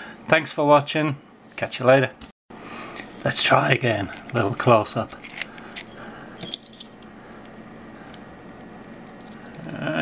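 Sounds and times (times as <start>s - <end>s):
key ring jingling: 5.2s - 6.9s.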